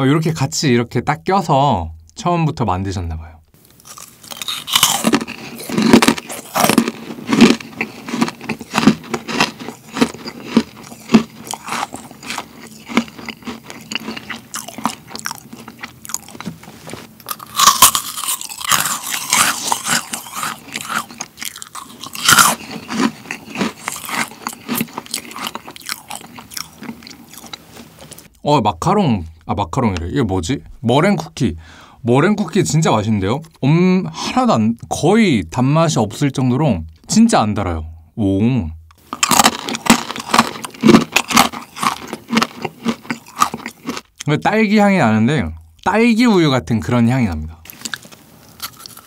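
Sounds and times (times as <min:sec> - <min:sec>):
crunching and chewing cookie: 0:03.6 - 0:28.4, 0:38.9 - 0:44.4, 0:47.3 - 0:49.0.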